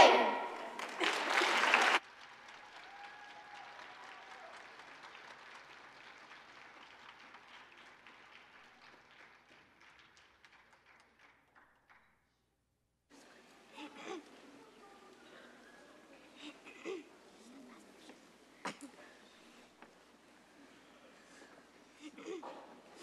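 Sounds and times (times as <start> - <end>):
choir singing chord: 0.0 - 0.8
audience applause: 0.0 - 11.6.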